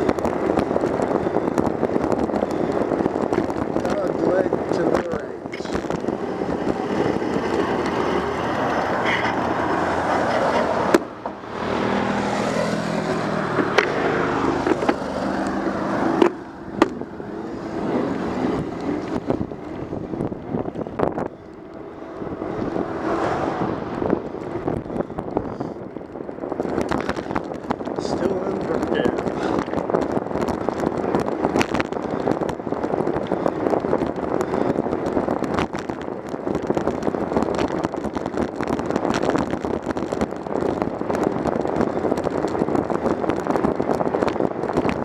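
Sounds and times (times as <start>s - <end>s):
bicycle tyre noise: 0.0s - 45.0s
wind rush: 0.0s - 45.0s.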